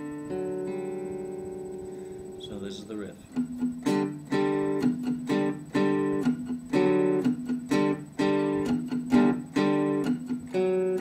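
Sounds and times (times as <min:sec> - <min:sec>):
acoustic guitar strummed: 0:00.0 - 0:11.0.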